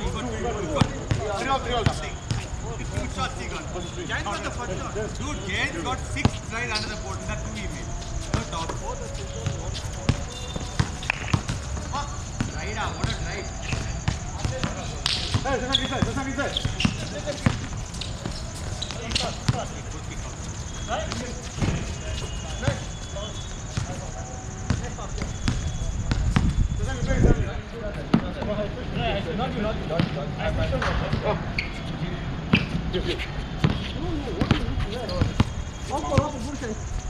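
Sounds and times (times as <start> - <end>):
players calling out: 0.0 - 27.0, 28.2 - 37.0
basketball bouncing on hard court: 9.4 - 17.8, 24.7 - 26.6.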